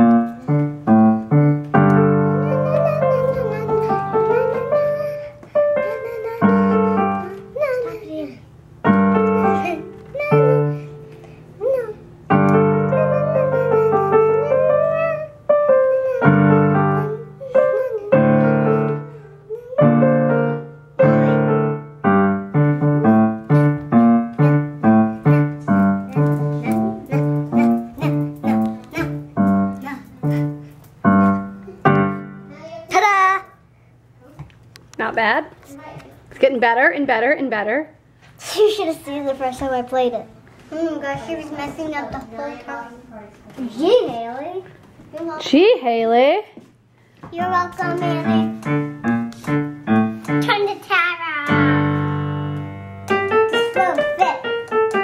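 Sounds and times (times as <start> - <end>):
electronic keyboard piano chords: 0.0 - 8.2, 8.8 - 32.7, 47.4 - 50.7, 51.4 - 55.0.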